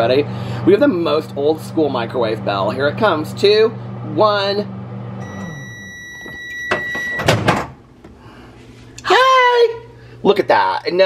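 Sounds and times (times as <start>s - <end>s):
microwave oven humming: 0.0s - 11.0s
microwave bell ding: 5.2s - 7.3s.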